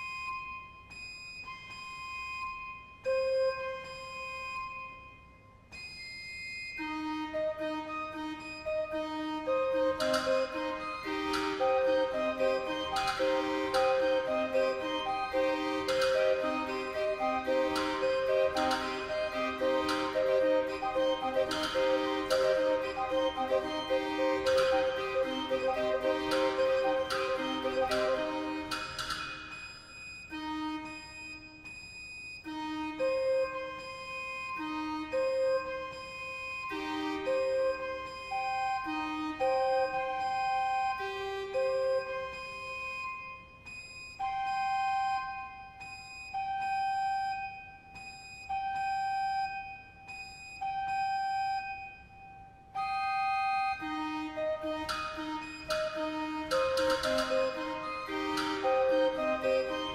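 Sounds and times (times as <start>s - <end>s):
barrel organ playing: 6.8s - 31.6s, 50.6s - 59.9s.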